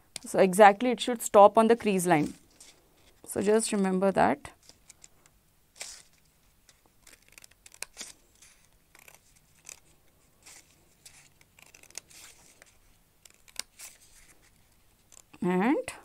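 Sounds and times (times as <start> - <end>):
scissors snipping paper: 7.0 - 14.1.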